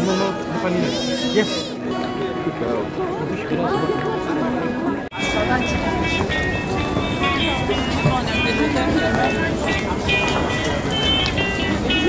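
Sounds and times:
crowd chatter: 0.0 - 12.0
music: 0.0 - 12.0.

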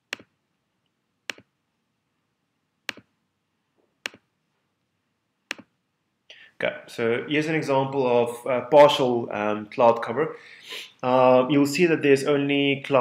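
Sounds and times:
computer mouse clicks: 1.3 - 1.5, 2.9 - 3.1, 4.0 - 4.2, 5.5 - 5.7.

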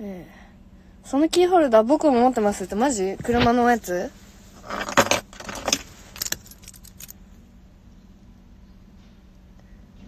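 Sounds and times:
keychain jangling: 5.6 - 7.2.

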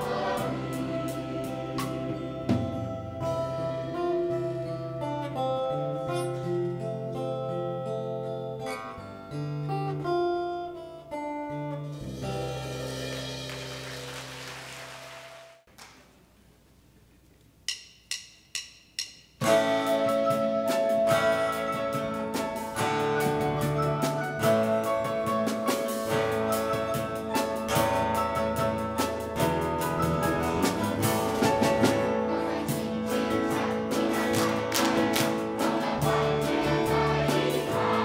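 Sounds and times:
live band playing: 0.0 - 5.5, 11.9 - 15.4, 19.4 - 38.0
drumstick clicks: 17.4 - 19.3.

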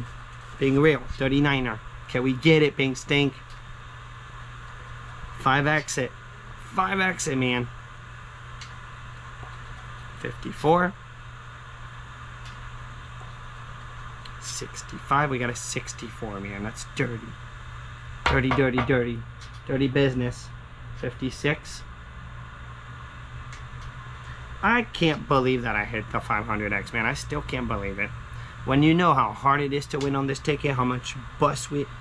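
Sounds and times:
steady low hum and hiss: 0.0 - 32.0.

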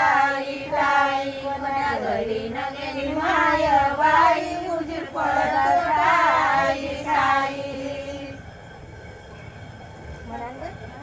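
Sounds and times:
women singing together: 0.0 - 8.6.

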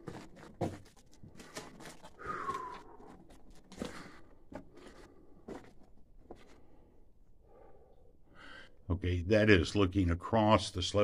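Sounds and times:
footsteps crunching on rubble: 0.0 - 6.6.

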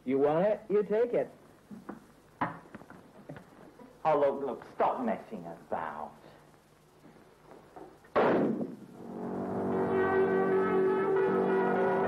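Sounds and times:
rifle shot: 8.1 - 8.8.

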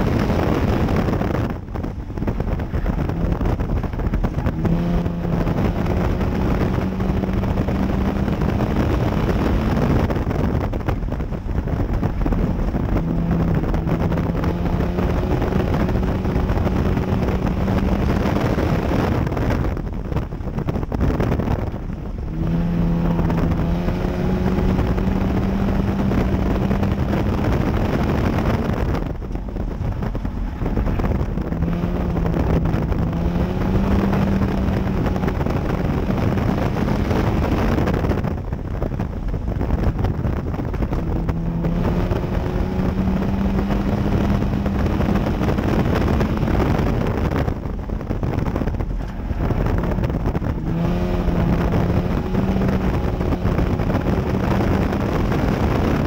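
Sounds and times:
race car engine revving: 0.0 - 56.0
wind noise on microphone: 0.0 - 56.0.

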